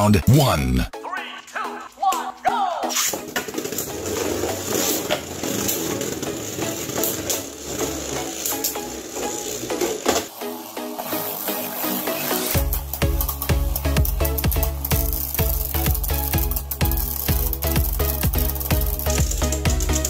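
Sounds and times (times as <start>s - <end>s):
background music: 0.0s - 20.0s
spinning tops clacking: 1.6s - 20.0s.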